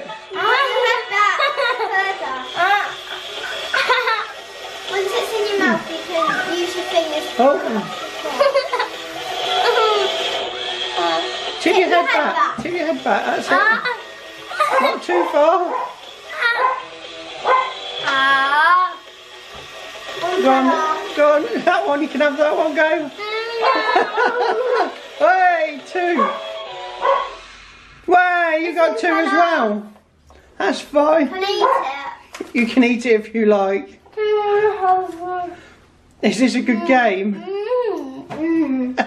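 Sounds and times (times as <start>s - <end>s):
dog howling: 14.5s - 18.6s, 23.3s - 24.9s, 26.2s - 27.4s
dog barking: 14.6s - 17.8s, 26.2s - 26.4s, 27.0s - 27.4s, 31.6s - 32.2s.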